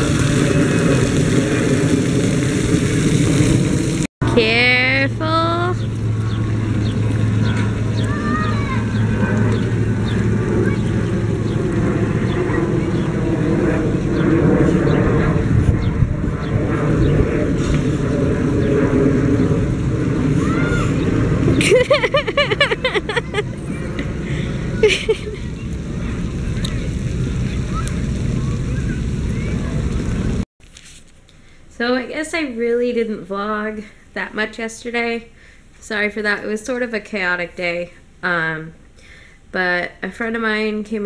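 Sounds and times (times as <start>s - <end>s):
rushing outdoor noise: 0.0s - 33.0s.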